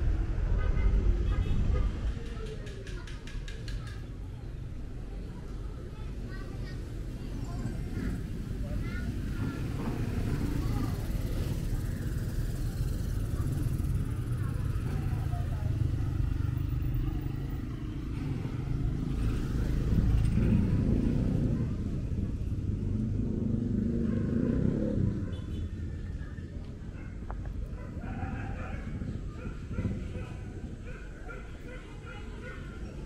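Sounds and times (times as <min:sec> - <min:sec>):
faint voices: 0:00.0 - 0:23.2, 0:23.8 - 0:33.0
motorcycle engine rumbling: 0:06.7 - 0:33.0.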